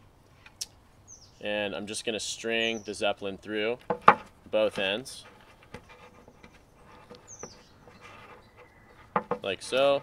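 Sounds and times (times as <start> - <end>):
high bird chirp: 7.2 - 9.1.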